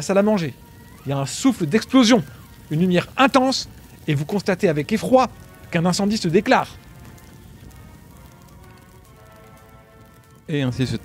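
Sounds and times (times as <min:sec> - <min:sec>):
fine crackling noise: 0:00.0 - 0:11.0
quiet background score: 0:00.0 - 0:11.0.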